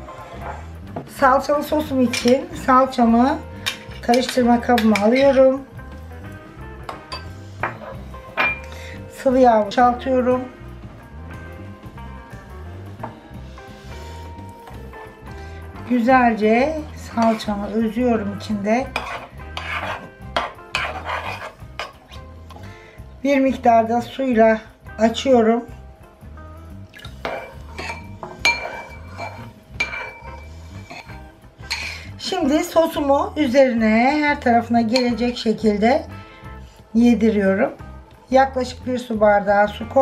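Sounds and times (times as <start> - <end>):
background music with low bass: 0.0 - 40.0
metal spoon clinking against bowl: 6.9 - 7.3, 27.2 - 31.9.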